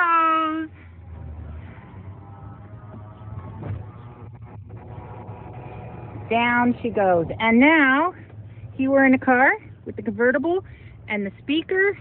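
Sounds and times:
convertible top motor humming: 0.0s - 12.0s.

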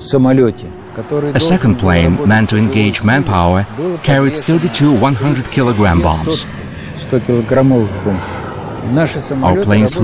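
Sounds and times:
jet aircraft rushing noise: 0.0s - 10.0s.

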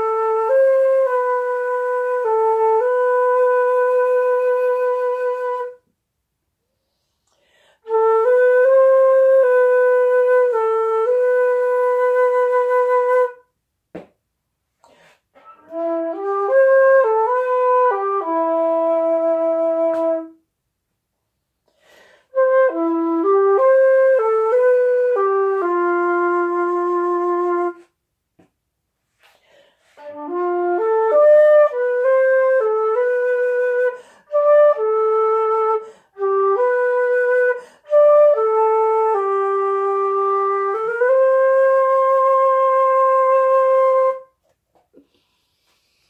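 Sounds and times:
solo flute melody: 0.0s - 5.9s, 7.8s - 13.5s, 15.4s - 20.4s, 22.2s - 28.0s, 30.0s - 44.5s.

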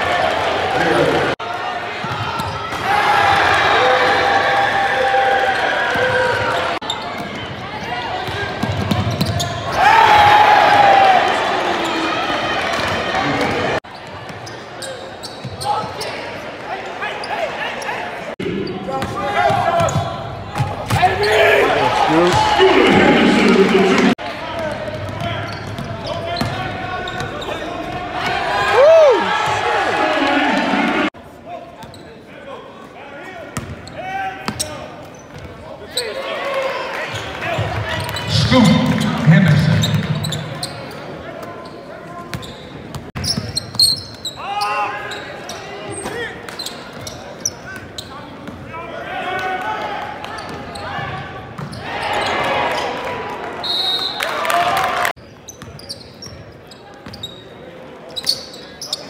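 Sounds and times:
people shouting in gym: 9.7s - 11.4s
basketball bouncing on court: 24.6s - 27.3s.

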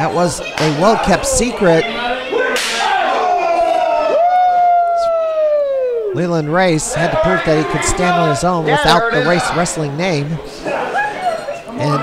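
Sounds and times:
crowd yelling woo: 2.3s - 6.2s.

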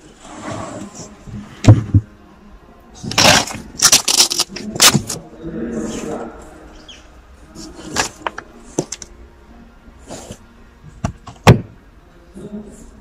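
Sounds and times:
floor board scraping and knocking: 0.2s - 2.1s.

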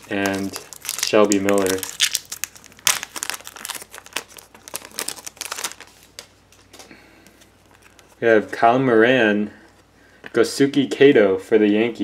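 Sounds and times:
foil wrapper crinkling: 0.0s - 8.2s
cards rustling: 0.0s - 8.5s.

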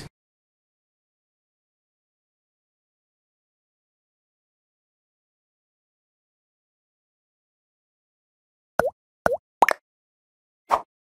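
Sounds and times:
cartoon bloop pops: 8.8s - 9.8s.

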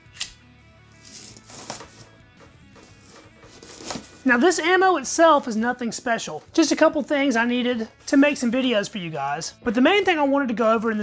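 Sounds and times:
quiet background music: 0.0s - 11.0s
blade slicing packing tape: 1.0s - 2.1s, 2.8s - 4.2s.

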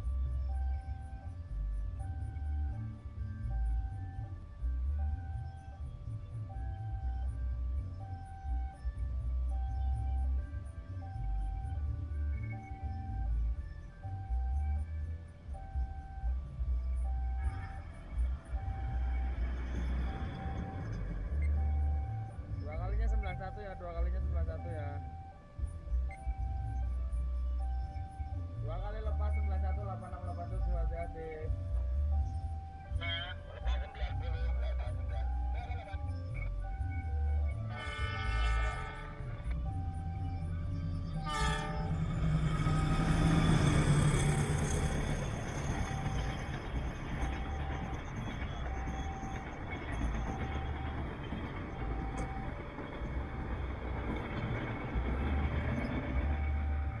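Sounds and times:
level crossing alarm beeping: 0.0s - 57.0s
train wheels rumbling on rails: 15.5s - 25.1s, 28.8s - 57.0s
train horn: 37.7s - 39.6s, 41.2s - 43.6s.

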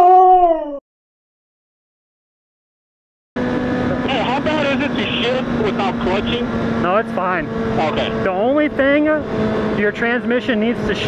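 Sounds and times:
motorcycle engine running: 3.4s - 11.0s
road noise: 3.4s - 11.0s.

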